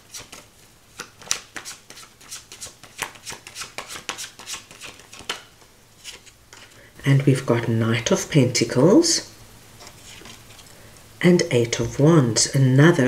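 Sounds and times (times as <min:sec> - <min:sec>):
cards being shuffled by hand: 0:00.0 - 0:07.4, 0:09.8 - 0:10.7.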